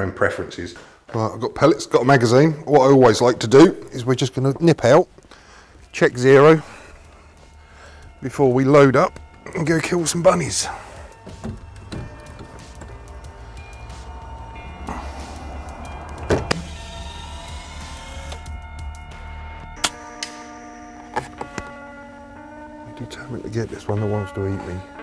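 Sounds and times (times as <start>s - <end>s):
background music: 2.0s - 25.0s.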